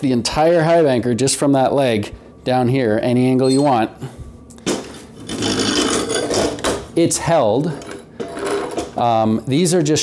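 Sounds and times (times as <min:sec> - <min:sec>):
metal scraping on floor: 0:04.9 - 0:06.7.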